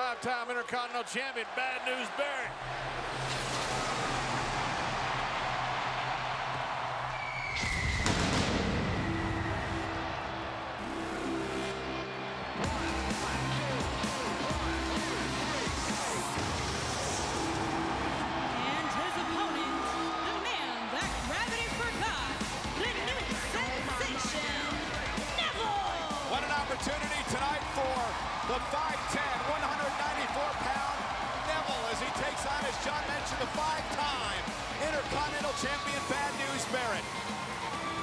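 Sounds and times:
arena crowd noise: 0:00.0 - 0:38.0
entrance music with steady beat: 0:09.1 - 0:38.0.

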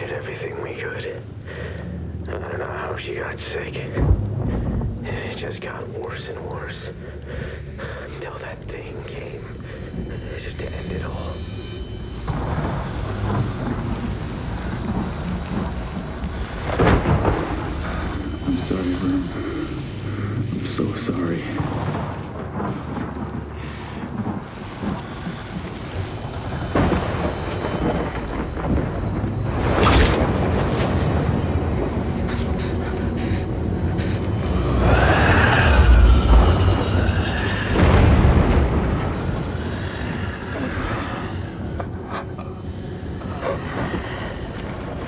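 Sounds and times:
low wind rumble: 0:00.0 - 0:45.0
creature cry: 0:34.0 - 0:38.1.

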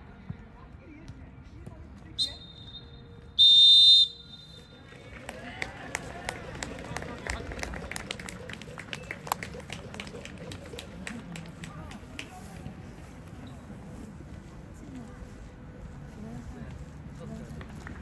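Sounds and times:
referee's whistle: 0:02.2 - 0:04.8.

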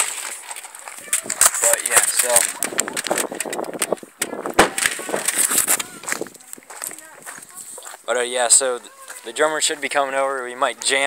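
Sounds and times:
phone microphone handling noise: 0:01.0 - 0:07.8.

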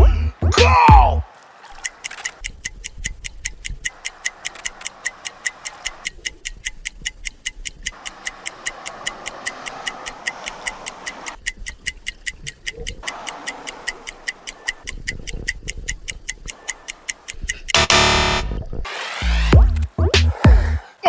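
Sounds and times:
clock ticking fast: 0:00.0 - 0:18.6, 0:19.4 - 0:20.8.

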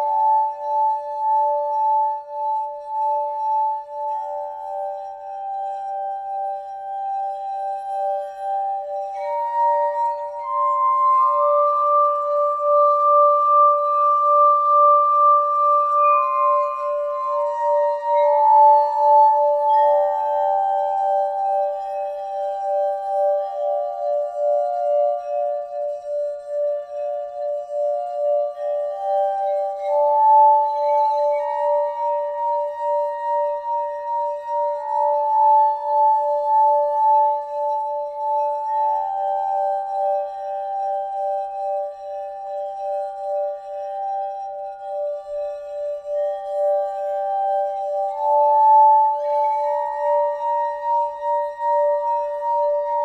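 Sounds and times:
crystal singing bowls ringing: 0:00.0 - 0:53.0.

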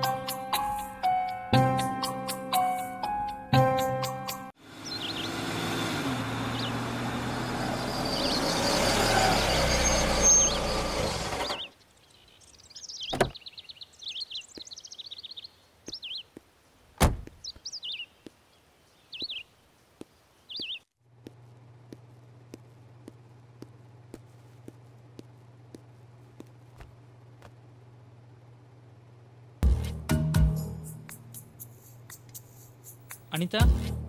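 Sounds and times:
car engine slowing to a stop: 0:04.6 - 0:11.7
birds chirping: 0:04.7 - 0:20.9.

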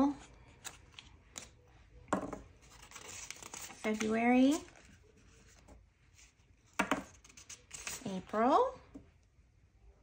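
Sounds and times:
paper banknotes rustling: 0:02.5 - 0:06.4, 0:07.1 - 0:08.3.

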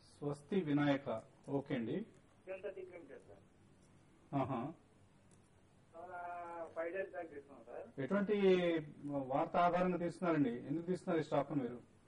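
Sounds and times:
man speaking: 0:00.1 - 0:03.5, 0:06.0 - 0:11.8.

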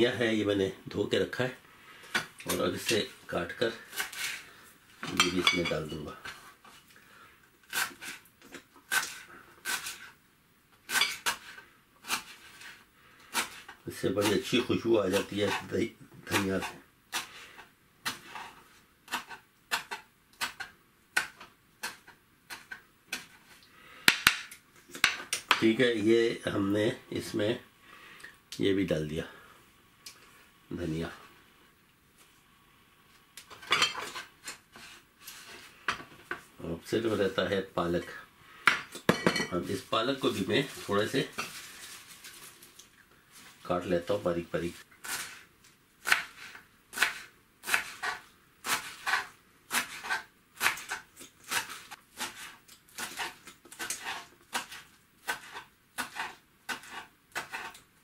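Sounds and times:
knife chopping on wooden board: 0:46.1 - 0:57.8.

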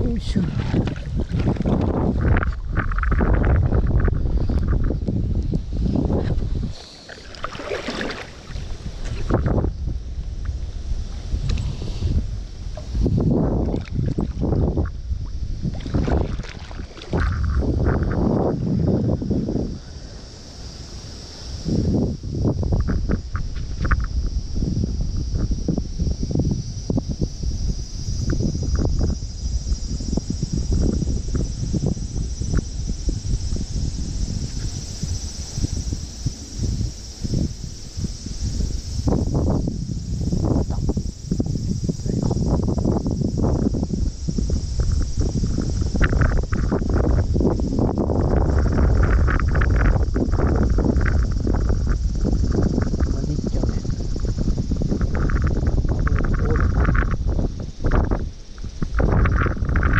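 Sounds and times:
high-pitched insect drone: 0:00.0 - 0:59.9
wind rumbling on microphone: 0:00.0 - 0:59.9.

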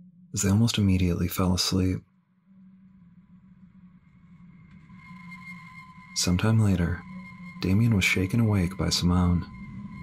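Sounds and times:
low ambient drone hum: 0:00.0 - 0:10.0
thin high sustained tones: 0:00.0 - 0:10.0.

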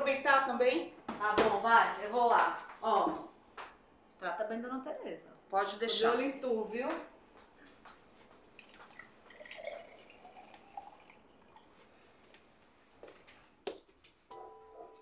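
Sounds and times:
juice pouring into a glass: 0:08.5 - 0:11.8.

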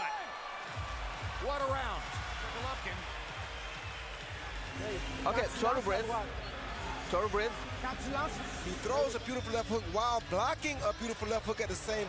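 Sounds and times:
arena crowd noise: 0:00.0 - 0:12.0
music with steady bass beat: 0:00.7 - 0:12.0.

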